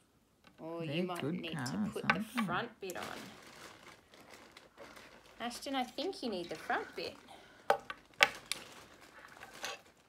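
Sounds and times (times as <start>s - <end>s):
rustling handling noise: 2.8s - 10.0s.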